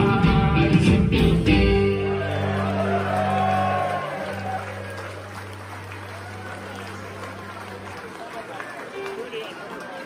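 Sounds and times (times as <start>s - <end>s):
live rock band song: 0.0s - 3.0s
audience applause and cheering: 1.7s - 10.0s.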